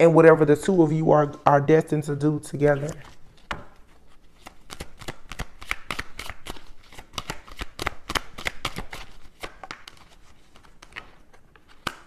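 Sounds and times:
cards being shuffled: 2.6s - 12.0s.

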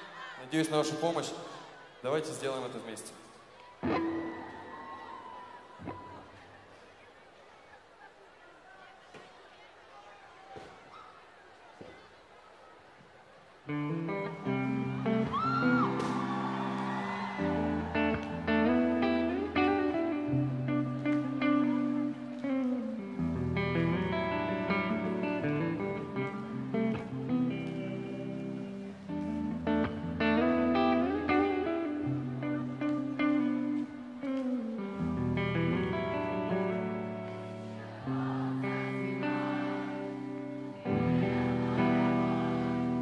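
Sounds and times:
electric guitar melody: 3.8s - 4.8s, 13.7s - 43.0s.

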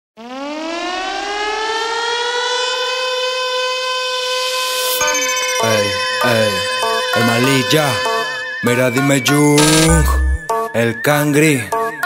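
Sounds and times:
siren winding up: 9.6s - 10.4s.

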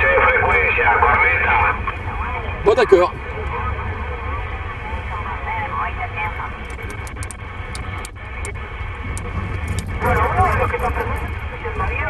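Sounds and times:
distorted radio voices: 0.0s - 12.0s
radio band hiss: 0.1s - 12.0s.

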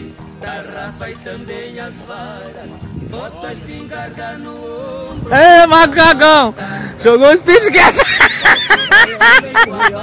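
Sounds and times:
man chuckling: 8.0s - 10.0s.

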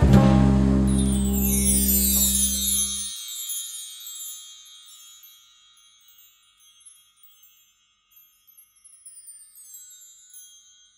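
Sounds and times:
high-pitched chime ringing: 0.8s - 10.9s
shimmering tones sliding downward: 0.9s - 3.1s.

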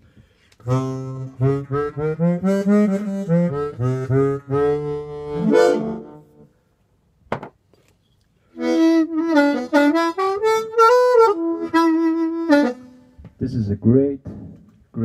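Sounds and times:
amplified harmonica: 0.4s - 6.5s, 8.5s - 13.2s.

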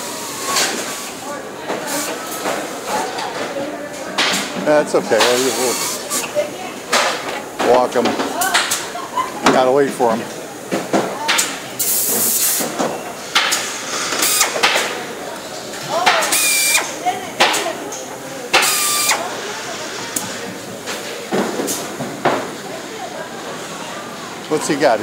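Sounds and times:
factory chatter: 0.0s - 25.0s
compressed air hiss: 5.2s - 6.2s, 11.8s - 12.7s, 13.4s - 14.8s, 16.2s - 17.0s, 18.5s - 19.4s
air tool whine: 5.2s - 6.3s, 13.4s - 14.7s, 16.0s - 17.0s, 18.5s - 19.4s.

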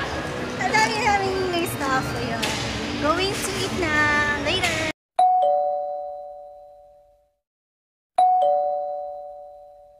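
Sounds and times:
two-tone ding-dong chime: 5.2s - 7.1s, 8.2s - 9.9s.

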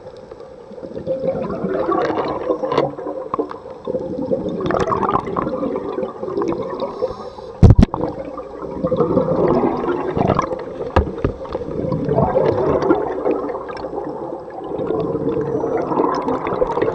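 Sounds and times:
underwater exhaled bubbles gurgling: 0.0s - 16.9s.

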